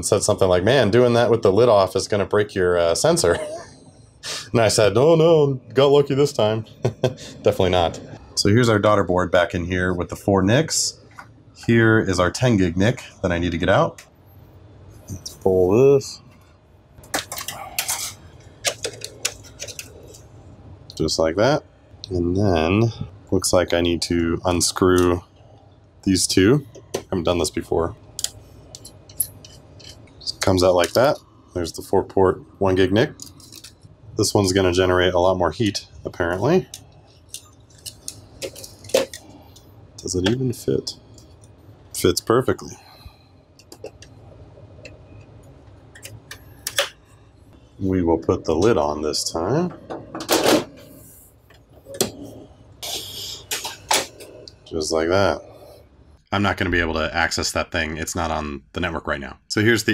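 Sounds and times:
low hum: 0.0s - 58.9s.

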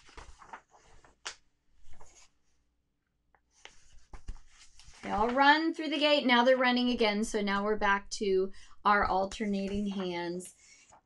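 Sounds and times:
book pages rustling: 0.0s - 2.6s, 3.4s - 5.5s, 9.3s - 11.0s.

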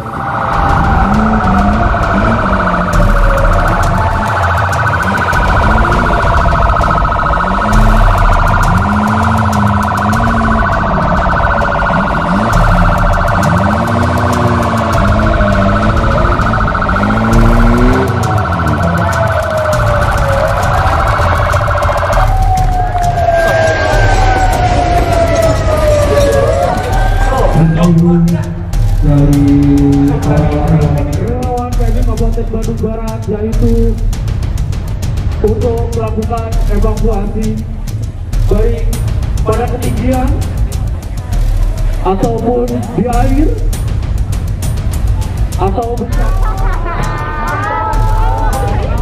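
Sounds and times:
fast warbling siren: 0.0s - 31.4s
wailing emergency sirens: 0.0s - 34.3s, 38.8s - 49.0s.

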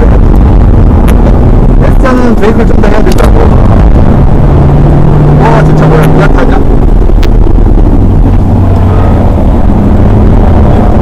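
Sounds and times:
diesel engine drone in cabin: 0.0s - 11.0s
road and wind noise: 0.0s - 11.0s.

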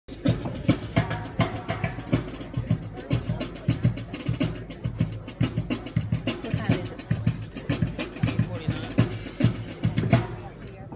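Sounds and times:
bass and snare drums: 0.1s - 10.9s.

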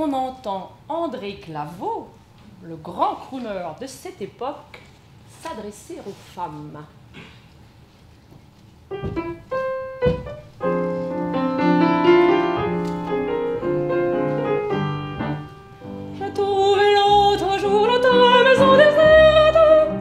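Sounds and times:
upright piano: 8.9s - 20.0s
woman singing with vibrato: 16.2s - 20.0s.

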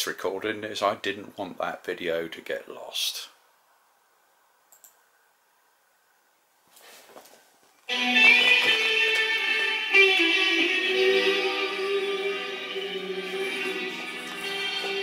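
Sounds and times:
faint rustle: 6.6s - 7.8s
music from television speakers: 7.9s - 15.0s.

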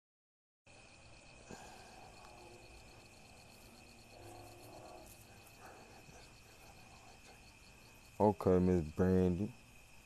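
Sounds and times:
insects trilling: 0.7s - 10.0s
pulsing insect chirp: 0.7s - 10.0s.

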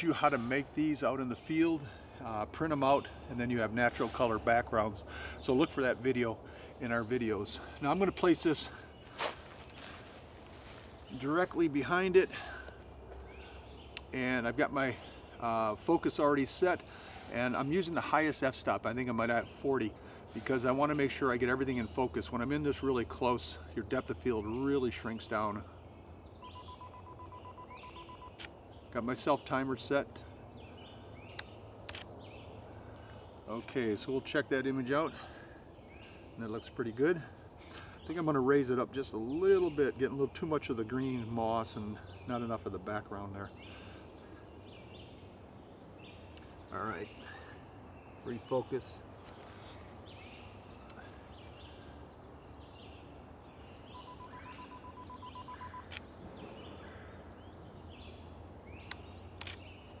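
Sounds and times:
birds chirping faintly: 0.0s - 60.0s
woodland ambience: 0.0s - 60.0s
camera self-timer beeping: 26.5s - 28.4s, 54.0s - 56.0s
camera shutter clicks: 58.9s - 59.6s.

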